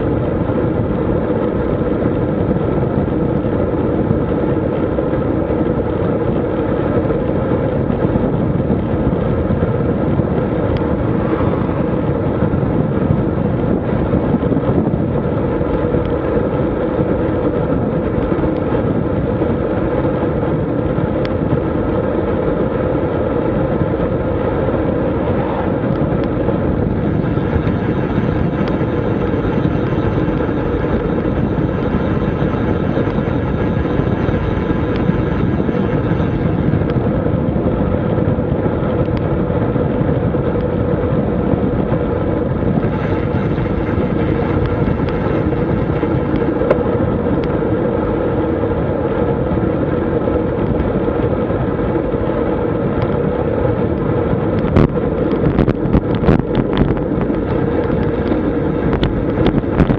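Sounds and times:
tyre and road noise: 0.0s - 59.9s
wind rush on microphone: 0.0s - 59.9s.

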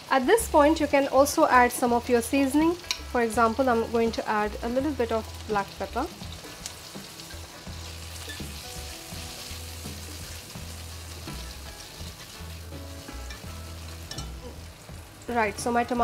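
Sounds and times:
vegetables sizzling in oil: 0.0s - 16.0s.

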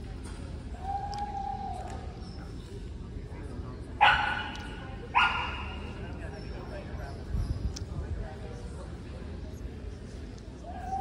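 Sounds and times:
dog barking in echoing hall: 4.0s - 6.0s.

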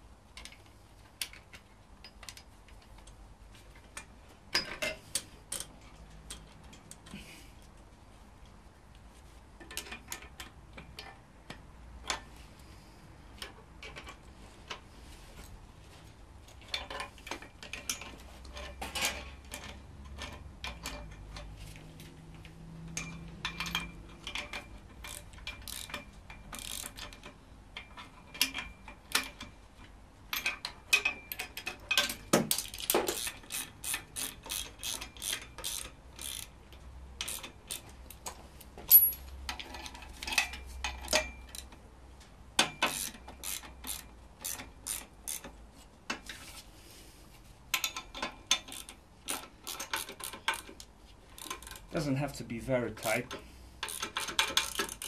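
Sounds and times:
ratchet wrench clicking: 22.4s - 29.5s, 30.3s - 41.7s, 42.6s - 45.6s, 47.7s - 51.9s, 53.0s - 55.0s.

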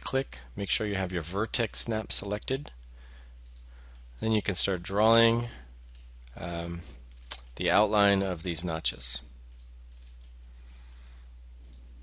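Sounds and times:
steady low hum: 0.0s - 12.0s
computer mouse clicks: 3.4s - 4.1s, 5.9s - 6.4s, 9.5s - 10.8s, 11.6s - 12.0s.

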